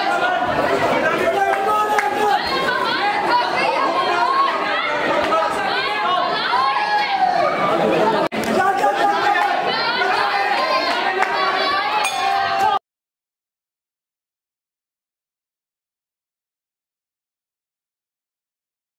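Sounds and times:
spectators chattering and calling out: 0:00.0 - 0:12.8.

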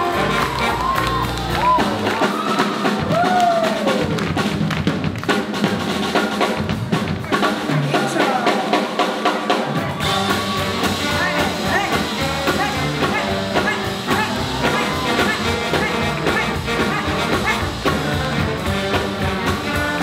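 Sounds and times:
drum kit beat: 0:00.0 - 0:20.0
jazz band playing swing: 0:00.0 - 0:20.0.

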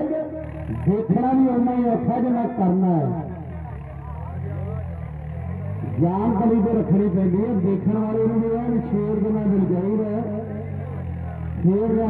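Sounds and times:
faint commentary: 0:00.0 - 0:12.0
tractor diesel engine running: 0:00.0 - 0:12.0.

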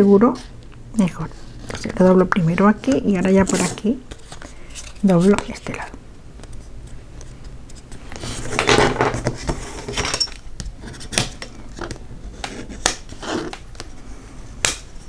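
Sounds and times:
paper rustling and crinkling: 0:03.2 - 0:10.0.

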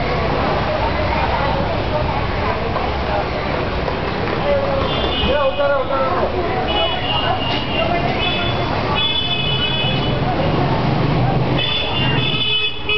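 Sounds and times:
people talking: 0:00.0 - 0:12.4
vehicle horns tooting: 0:04.8 - 0:10.3, 0:11.6 - 0:12.9.

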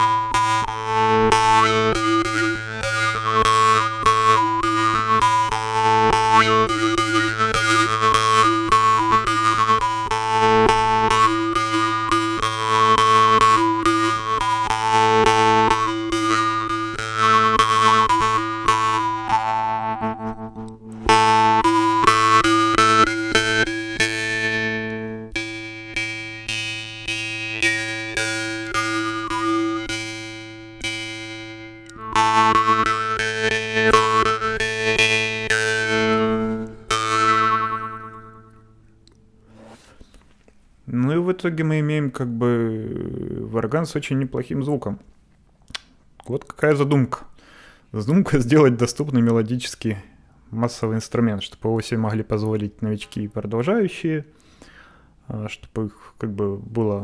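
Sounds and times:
jaw harp playing a tune: 0:00.0 - 0:40.2.

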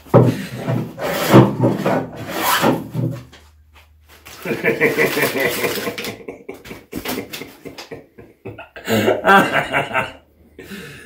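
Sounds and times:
hand plane shaving wooden board: 0:00.2 - 0:02.8.

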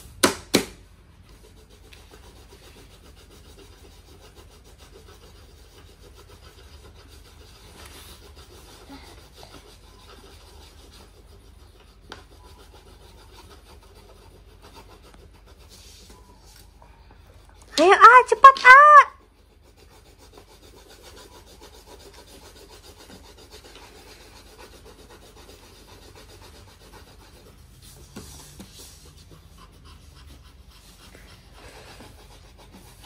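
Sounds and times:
pencils scratching on paper: 0:01.1 - 0:33.0.

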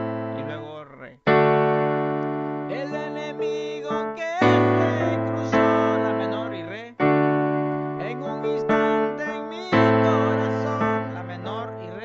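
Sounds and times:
electronic keyboard piano chords: 0:00.0 - 0:12.0.

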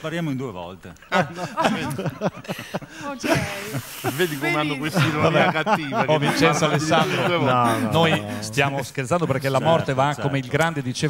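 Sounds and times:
voices talking over one another: 0:03.0 - 0:10.0.

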